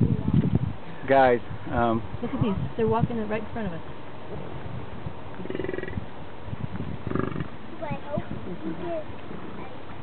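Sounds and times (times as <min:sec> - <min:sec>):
bison grunting: 0:07.0 - 0:07.6.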